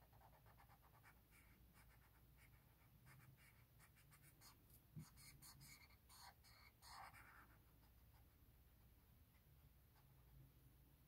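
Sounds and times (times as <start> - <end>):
marker scratching on paper: 0.0 - 8.4.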